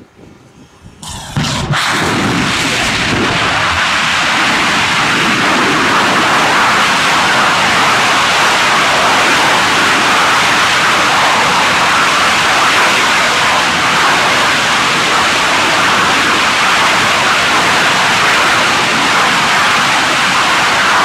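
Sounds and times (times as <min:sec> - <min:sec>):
rocket engine firing: 0:00.0 - 0:21.0.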